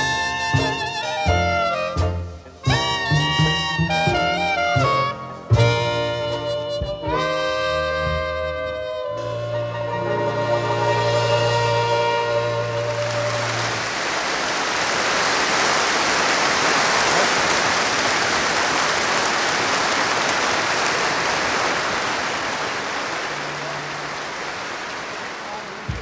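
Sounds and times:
jazz band chord: 0.0s - 13.7s
audience applauding: 12.4s - 26.0s.

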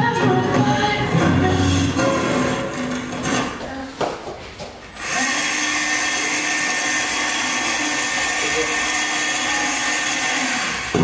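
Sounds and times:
motor whirring with low hum: 5.0s - 11.0s.

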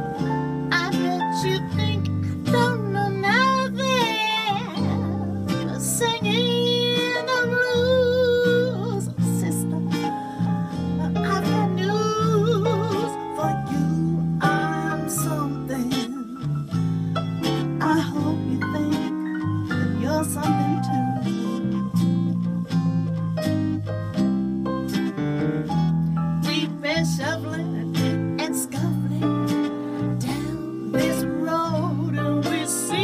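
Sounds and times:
guitar accompaniment: 0.0s - 33.0s
woman singing with vibrato: 0.7s - 10.1s, 11.0s - 16.4s, 17.8s - 19.2s, 19.8s - 21.8s, 26.4s - 29.6s, 30.2s - 33.0s.

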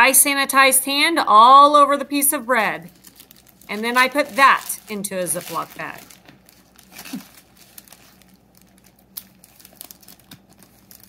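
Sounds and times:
plastic zip bag crinkling: 2.8s - 11.0s.

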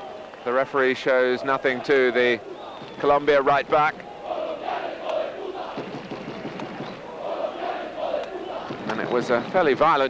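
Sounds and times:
stadium crowd shouting: 0.0s - 10.0s.

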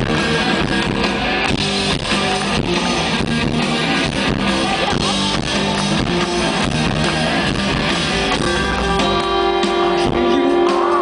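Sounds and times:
drum hits: 0.0s - 10.4s
electric guitar: 0.0s - 11.0s.

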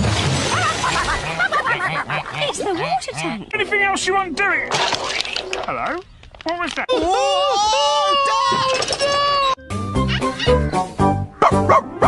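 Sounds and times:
held cry: 6.9s - 9.6s
bouncy cartoon music: 9.1s - 12.0s.

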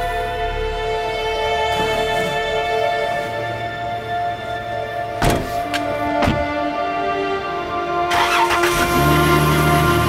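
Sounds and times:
background music: 0.0s - 10.0s
car engine cranking and idling: 1.0s - 7.0s, 8.0s - 10.0s.

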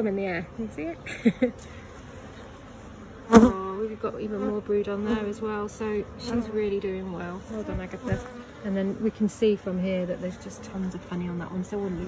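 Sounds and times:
honeybees buzzing: 1.8s - 12.0s
bee buzzing close to microphone: 3.2s - 9.3s.

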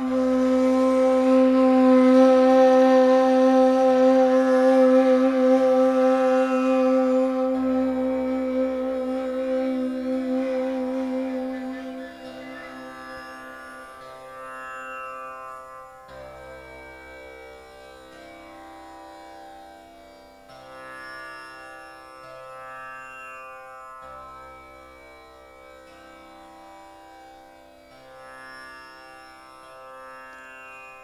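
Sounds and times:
ney flute long note: 0.0s - 13.8s
tanpura drone: 0.0s - 31.0s.

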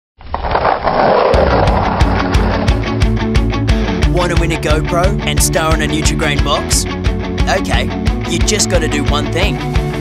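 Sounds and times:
skateboard wheels rolling on pavement: 0.2s - 3.5s
rock music with drums and bass: 1.3s - 10.0s.

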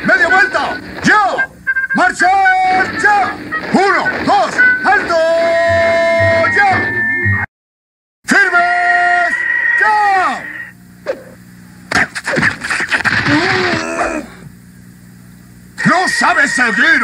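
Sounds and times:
cartoon character vocal sounds: 13.3s - 14.4s.

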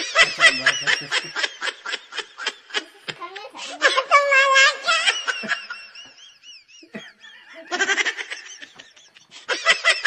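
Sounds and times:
people laughing: 0.0s - 10.0s.

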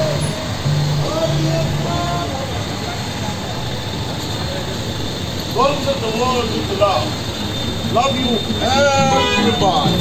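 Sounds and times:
traffic passing: 0.0s - 10.0s.

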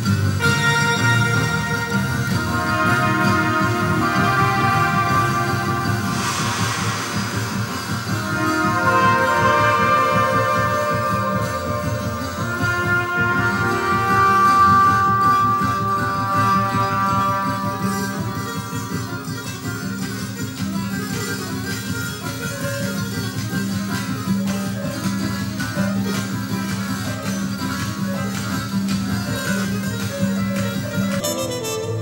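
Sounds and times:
flugelhorn note: 0.0s - 22.9s, 23.9s - 32.0s
double bass plucking: 0.0s - 32.0s.

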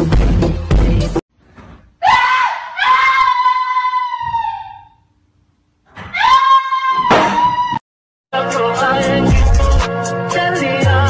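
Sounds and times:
person screaming: 2.0s - 5.0s, 6.0s - 7.8s.

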